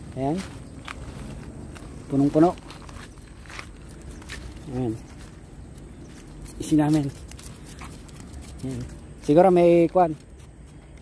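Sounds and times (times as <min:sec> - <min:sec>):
pebbles crunching underfoot: 0:00.0 - 0:10.9
person speaking: 0:00.0 - 0:10.9.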